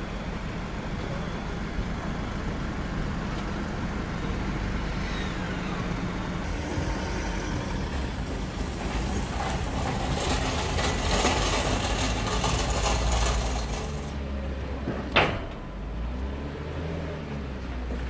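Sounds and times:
tyre noise on wet road: 0:00.0 - 0:15.1
low engine rumble: 0:00.0 - 0:18.0.

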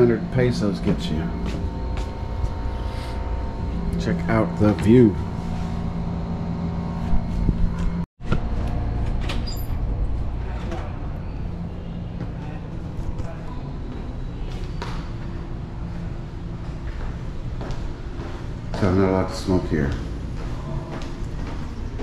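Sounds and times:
low hum and rumble: 0:00.0 - 0:22.0.

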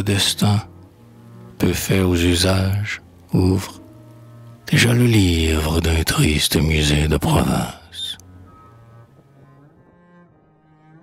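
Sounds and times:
low bowed strings: 0:00.0 - 0:11.0.

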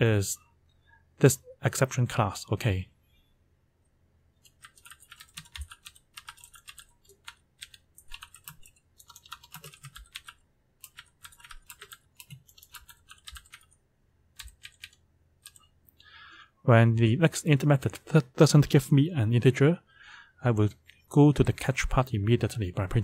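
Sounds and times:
keyboard typing: 0:04.4 - 0:15.7.

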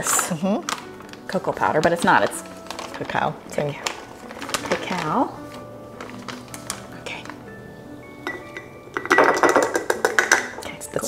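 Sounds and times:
plastic scoop clinking on glass jar: 0:00.0 - 0:07.4, 0:08.2 - 0:10.6.

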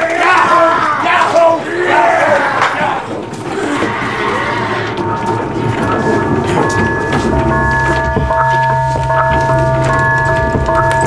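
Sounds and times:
people shouting and yelling: 0:00.0 - 0:06.0
scuffling commotion: 0:00.0 - 0:11.0
held musical tones: 0:04.2 - 0:11.0.

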